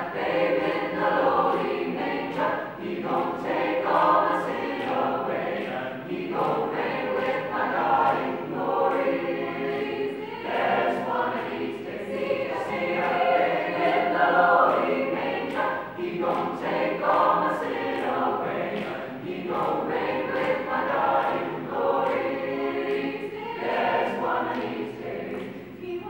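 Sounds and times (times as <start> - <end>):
mixed choir singing a cappella: 0.0 - 26.0.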